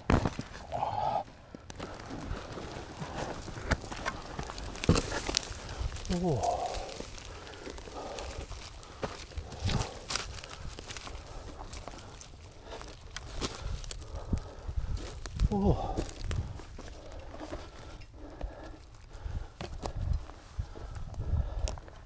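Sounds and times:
twigs cracking and snapping: 0.0s - 22.0s
rustling leaf litter: 1.8s - 18.0s.

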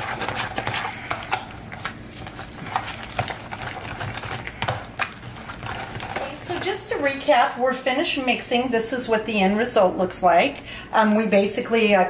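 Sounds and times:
soft mashing of avocado: 0.0s - 7.5s.

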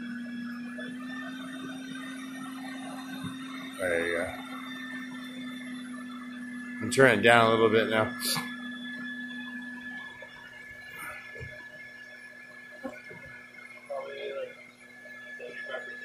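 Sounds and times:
vacuum humming and whining: 0.0s - 16.0s.

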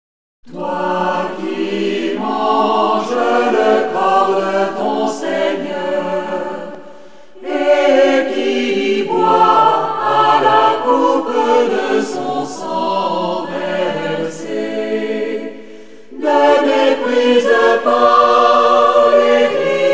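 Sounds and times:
choir singing a sacred song: 0.5s - 19.9s.

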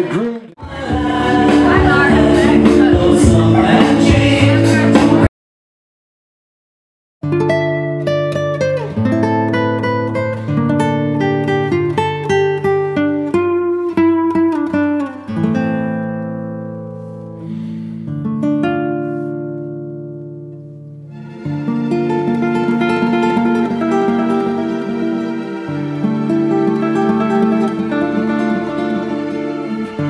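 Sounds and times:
plucked acoustic guitar: 0.0s - 5.3s, 7.2s - 30.0s.

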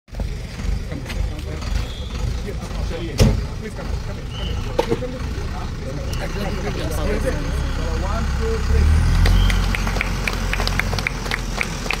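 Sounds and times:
truck engine idling: 0.1s - 12.0s
people clapping: 9.1s - 12.0s.

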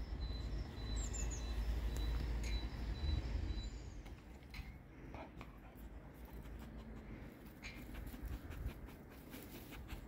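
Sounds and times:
small birds chirping: 0.0s - 4.1s.

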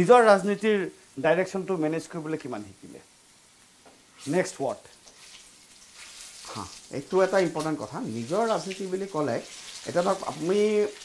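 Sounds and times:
food sizzling in a pan: 0.0s - 11.0s
spatula stirring: 4.1s - 11.0s.

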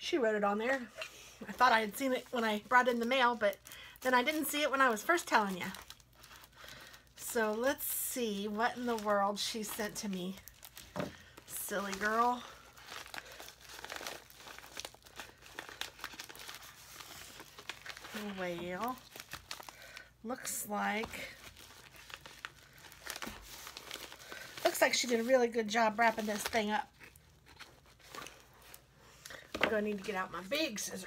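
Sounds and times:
package wrapping crinkling: 1.4s - 30.2s.

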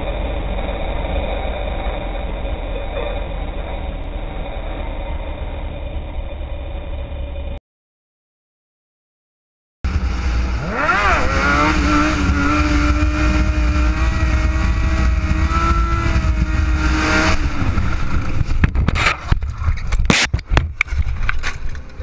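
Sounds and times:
motorcycle engine revving: 0.0s - 7.6s, 9.9s - 19.8s
low wind rumble: 9.9s - 22.0s.

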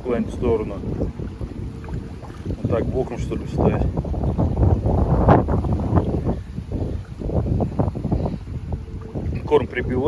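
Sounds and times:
gusty wind on microphone: 0.0s - 10.0s.

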